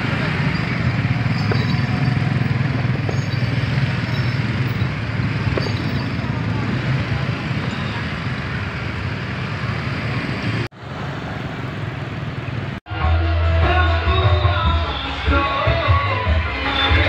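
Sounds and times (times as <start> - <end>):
motor scooter engines humming: 0.0 - 12.8
road noise: 0.0 - 17.0
voices: 4.5 - 8.6.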